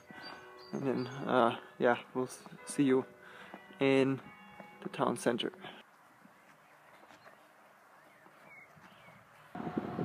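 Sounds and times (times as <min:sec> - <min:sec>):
outdoor ambience: 0:00.0 - 0:10.0.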